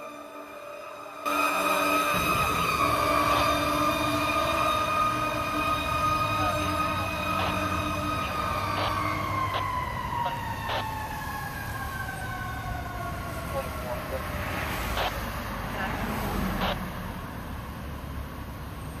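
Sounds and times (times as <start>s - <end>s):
fire truck siren: 0.0s - 17.4s
road traffic noise: 0.0s - 19.0s.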